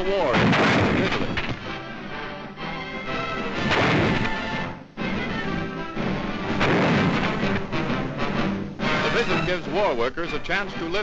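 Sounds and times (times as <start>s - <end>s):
loud gunfire: 0.3s - 1.4s, 3.6s - 4.5s, 6.5s - 7.7s
music soundtrack: 1.0s - 11.0s.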